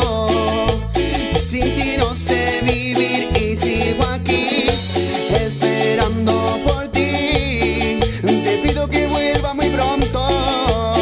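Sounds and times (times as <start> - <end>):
live band playing latin dance music: 0.0 - 11.0.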